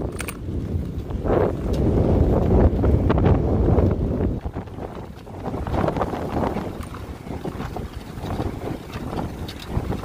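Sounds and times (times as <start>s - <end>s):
gusty wind buffeting microphone: 0.0s - 10.0s.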